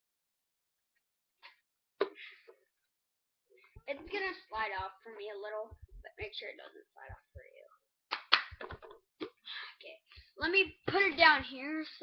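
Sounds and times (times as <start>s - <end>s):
hand slaps and taps: 8.1s - 9.0s.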